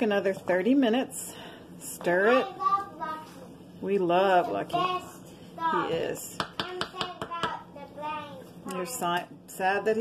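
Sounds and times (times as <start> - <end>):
wooden spoon knocking ceramic crock: 6.4 - 7.6.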